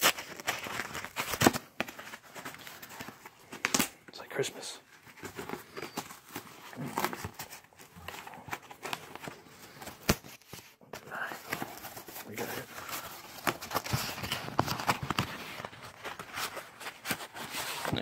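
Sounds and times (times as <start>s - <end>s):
cardboard box being opened: 5.0s - 18.0s.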